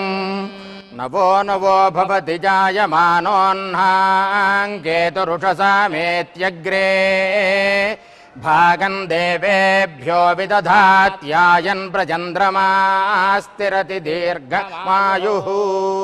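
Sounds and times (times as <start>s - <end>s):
person chanting mantra: 0.0s - 16.0s.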